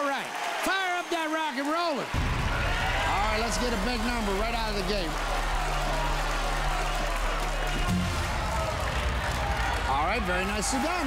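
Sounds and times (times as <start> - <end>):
studio audience cheering and shouting: 0.0 - 11.0
game show suspense music: 3.1 - 11.0.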